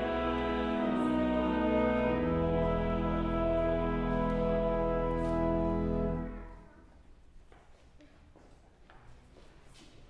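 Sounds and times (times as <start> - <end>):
pipe organ chord: 0.0 - 6.7.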